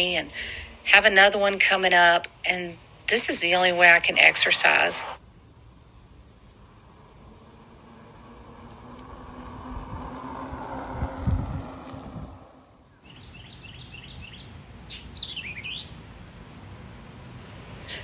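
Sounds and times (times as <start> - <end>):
electric bike passing: 5.3 - 17.9
birds chirping: 8.6 - 16.0.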